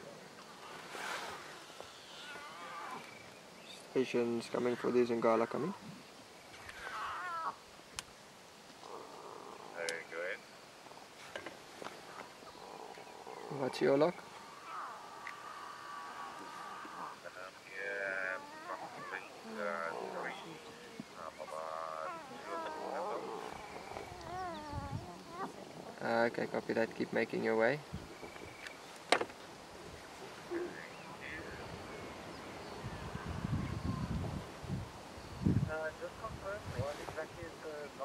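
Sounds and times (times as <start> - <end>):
lion cub mewing: 14.4 - 26.0.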